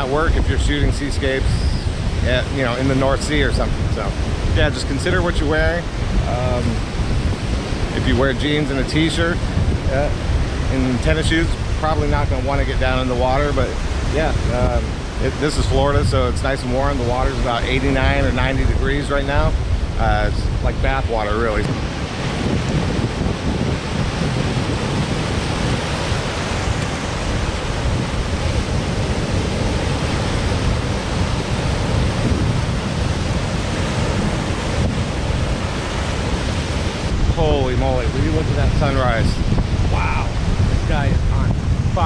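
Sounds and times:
man's voice: 0.0s - 6.8s, 8.0s - 10.1s, 10.7s - 21.7s, 37.3s - 42.0s
surf washing over rocks and sand: 0.0s - 42.0s
wind buffeting microphone: 0.0s - 42.0s.

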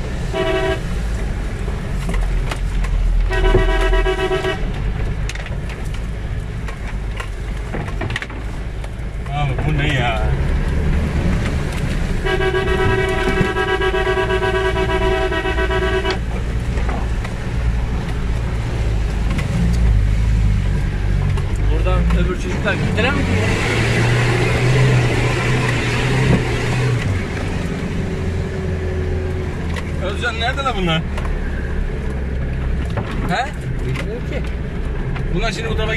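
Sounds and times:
car engine running under load: 0.0s - 35.9s
car horn blast: 0.3s - 0.8s, 3.3s - 4.7s, 12.2s - 16.3s.

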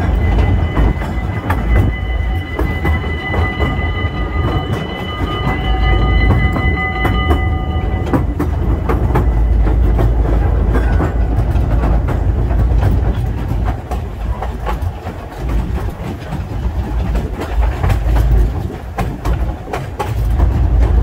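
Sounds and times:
high steady tones: 0.0s - 14.4s
steam train rumbling: 0.0s - 21.0s
wheels clicking over rail joints: 0.0s - 21.0s.

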